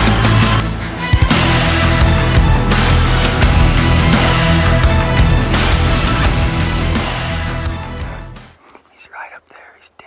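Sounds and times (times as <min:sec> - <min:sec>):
loud background music: 0:00.0 - 0:08.6
man whispering: 0:08.8 - 0:10.0.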